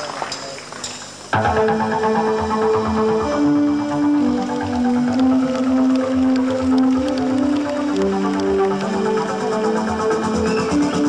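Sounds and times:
light cymbal ticks: 3.9s - 11.0s.

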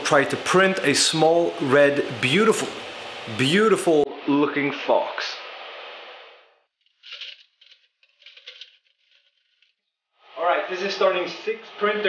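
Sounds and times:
plastic filament rattling and rustling: 6.8s - 10.0s.

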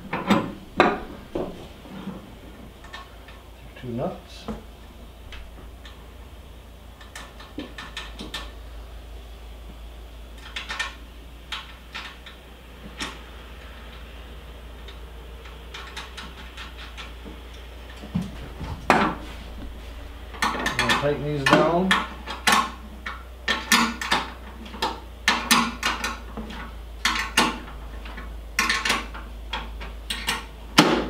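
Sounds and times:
steady low hum: 0.0s - 31.0s
metal nuts clicking and clinking: 20.4s - 30.5s.

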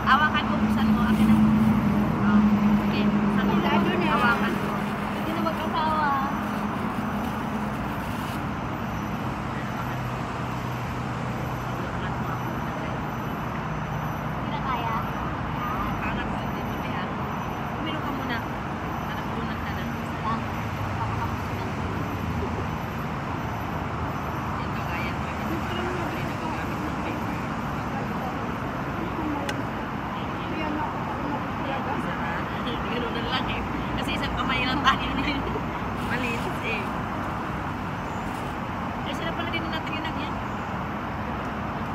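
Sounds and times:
city traffic hum: 0.0s - 41.9s
people chattering: 0.0s - 41.9s.

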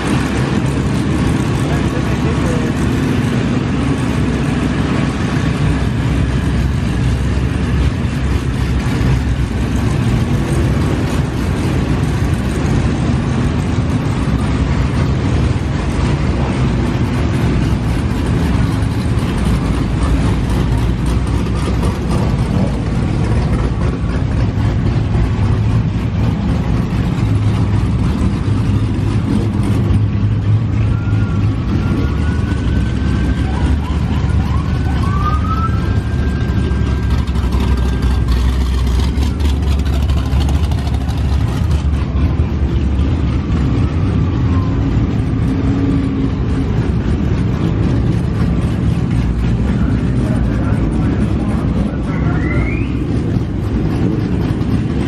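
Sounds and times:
car engines revving: 0.0s - 55.0s
siren wailing: 30.8s - 37.5s.

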